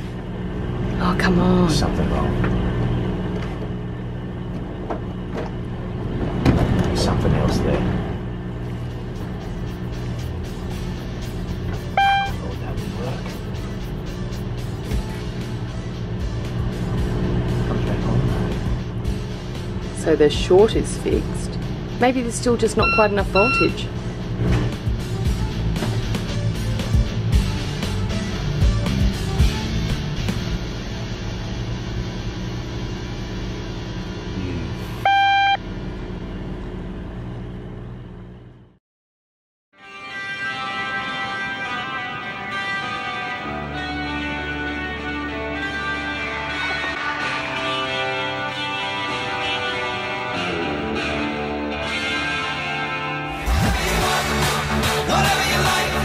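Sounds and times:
background music: 0:08.9 - 0:31.0, 0:39.8 - 0:56.0
short electronic beep: 0:11.9 - 0:12.5, 0:22.8 - 0:23.9, 0:35.0 - 0:35.6.

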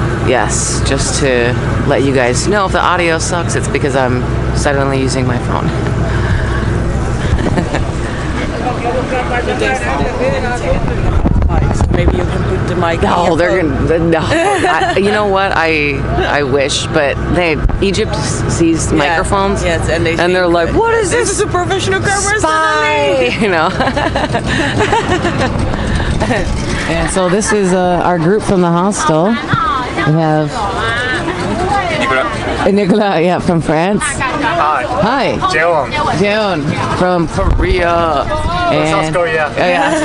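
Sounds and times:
boat engine humming: 0:00.0 - 0:40.0
indistinct voices: 0:00.0 - 0:40.0
low steady rumble: 0:00.0 - 0:40.0
people laughing: 0:06.3 - 0:10.0, 0:13.0 - 0:16.6, 0:22.3 - 0:28.0, 0:31.3 - 0:32.6, 0:39.3 - 0:40.0
women talking: 0:12.9 - 0:16.9, 0:17.8 - 0:25.6, 0:26.2 - 0:37.2.

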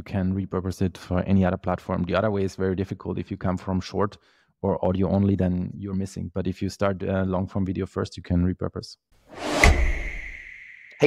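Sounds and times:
whoosh: 0:09.3 - 0:10.9
high ringing tone: 0:09.7 - 0:11.0.

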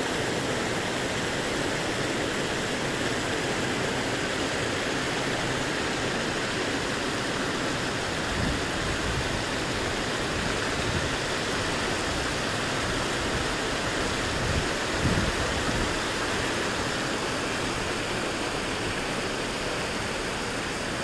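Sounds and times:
fountain water pouring down cascade: 0:00.0 - 0:21.0.

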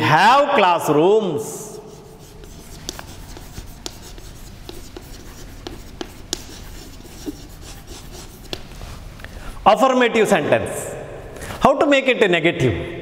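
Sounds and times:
chalk scratching on blackboard: 0:01.5 - 0:09.2
chalk taps on blackboard: 0:01.9 - 0:08.8.

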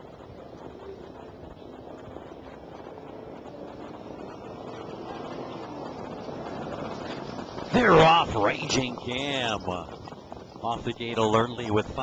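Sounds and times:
steady rushing noise: 0:00.0 - 0:12.0.

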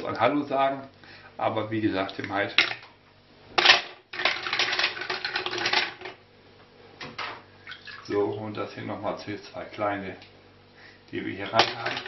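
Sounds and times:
shells rattling in metal pot: 0:03.6 - 0:06.2, 0:11.5 - 0:12.0.

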